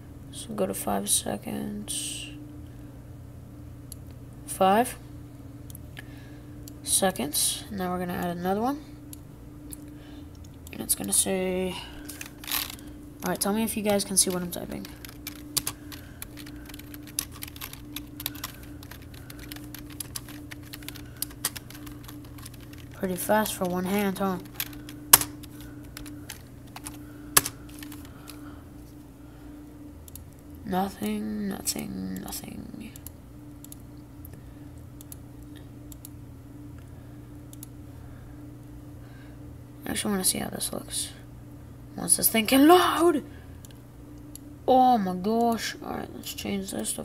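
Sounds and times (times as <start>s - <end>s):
steady low hum: 0.0s - 47.0s
keyboard keystrokes: 12.1s - 28.1s
keyboard key clicks: 24.5s - 28.0s.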